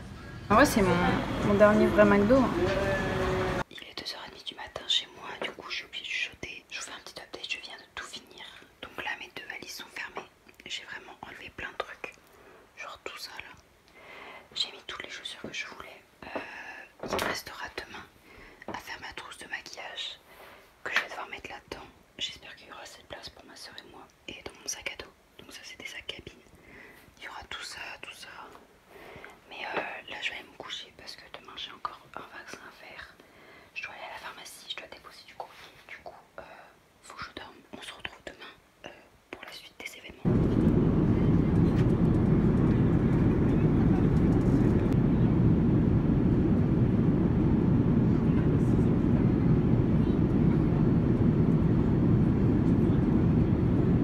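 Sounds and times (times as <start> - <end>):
soft whispering: 3.6 - 45.3
airliner cabin rumble and hiss: 40.2 - 54.0.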